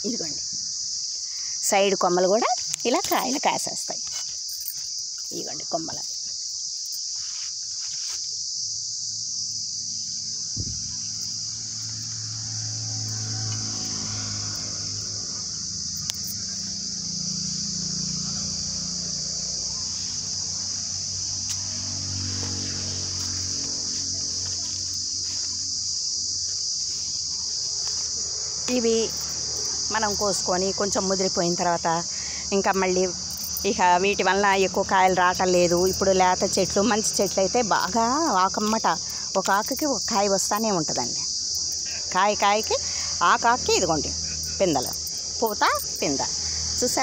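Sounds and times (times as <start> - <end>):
insects chirring: 0.0 - 47.0.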